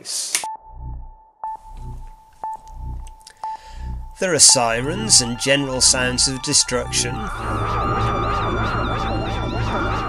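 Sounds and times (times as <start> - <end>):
low hum: 0.5 - 10.0.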